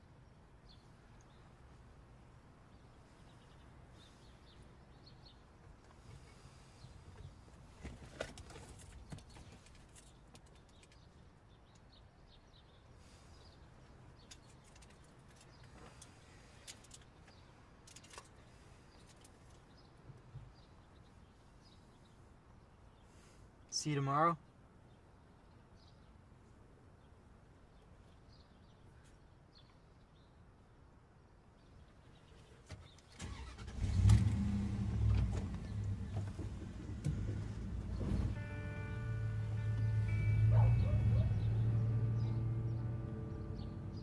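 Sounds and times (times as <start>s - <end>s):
faint outdoor ambience: 0.0s - 44.0s
car engine starting and idling: 33.1s - 44.0s.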